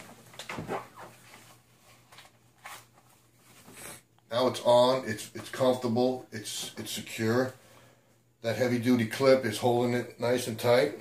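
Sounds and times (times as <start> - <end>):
holster scraping: 0.0 - 1.5
clothing rustle: 0.0 - 4.1.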